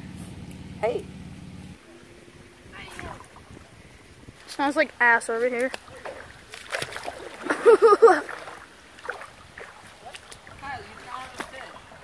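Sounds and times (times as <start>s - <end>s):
wind on microphone: 2.3s - 4.9s.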